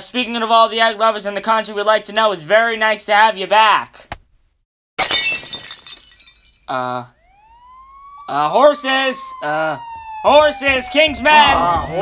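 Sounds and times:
glass shattering crash: 5.0s - 6.8s.

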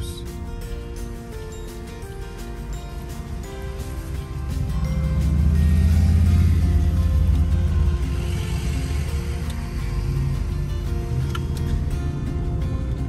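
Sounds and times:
background music: 0.0s - 13.0s
motorcycle engine passing: 4.5s - 10.6s.

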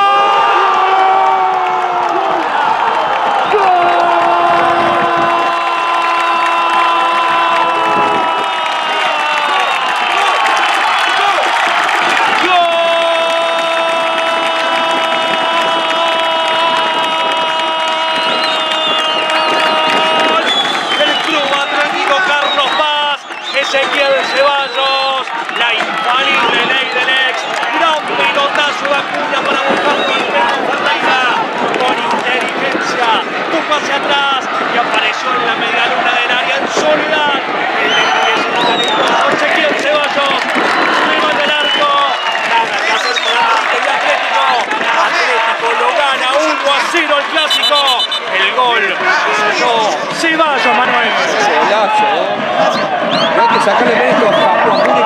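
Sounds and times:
crowd shouting and cheering: 0.0s - 55.0s.

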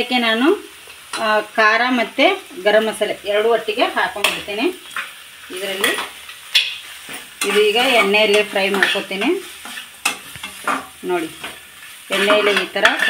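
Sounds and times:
onion and tomato frying in oil: 0.0s - 13.0s
steel spoon scraping pan: 5.7s - 13.0s
person talking: 12.1s - 13.0s.

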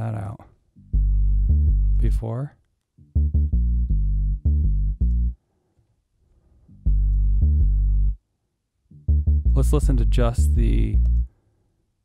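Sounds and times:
synth bass line: 0.8s - 2.2s, 3.0s - 5.4s, 6.8s - 8.2s, 8.9s - 11.3s.

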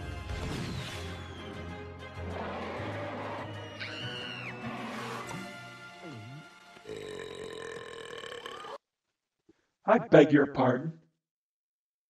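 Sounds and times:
orchestral music: 0.0s - 6.8s
cartoon creature belching: 6.0s - 8.8s.

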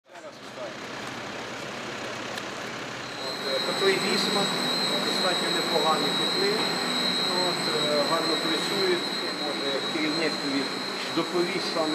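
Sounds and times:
steady rushing noise: 3.2s - 11.9s.

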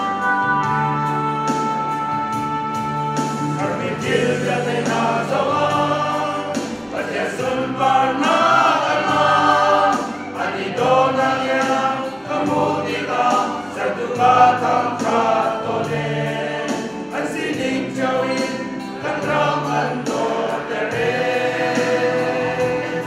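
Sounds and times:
men's choir singing a hymn: 3.2s - 23.0s.

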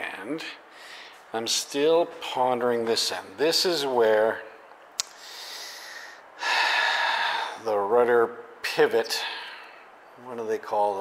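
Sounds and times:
man breathing close to microphone: 0.7s - 1.3s, 5.2s - 7.6s.

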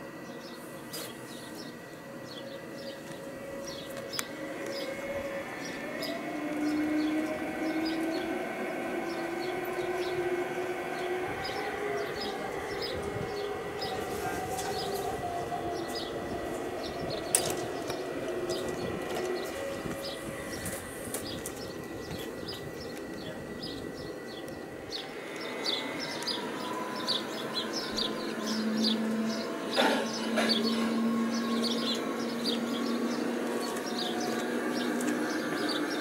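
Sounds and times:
small birds chirping: 0.2s - 5.0s, 5.6s - 36.0s
wheel rumble on rails: 1.4s - 36.0s
model train motor whine: 15.8s - 36.0s.

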